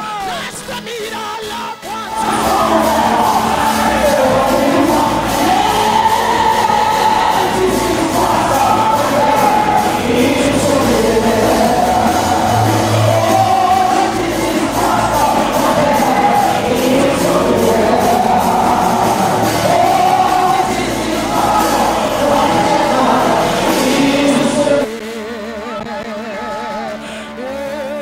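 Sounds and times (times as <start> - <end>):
instrumental accompaniment with beat: 0.0 - 27.7
congregation singing gospel song: 0.0 - 28.0.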